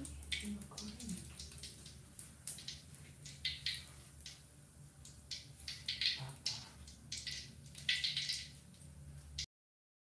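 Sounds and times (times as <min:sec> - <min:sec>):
oil crackling and popping: 0:00.0 - 0:09.5.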